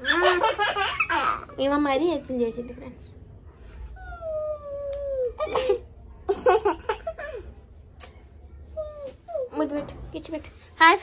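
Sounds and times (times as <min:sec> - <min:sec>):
child giggling: 0:00.0 - 0:01.6, 0:05.2 - 0:07.5.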